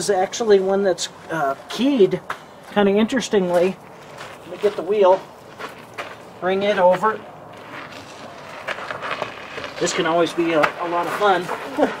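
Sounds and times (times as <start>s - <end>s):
man speaking: 0.0s - 3.8s, 4.4s - 5.3s, 6.4s - 7.2s, 9.8s - 12.0s
wheel scuffing on gravel: 0.5s - 12.0s.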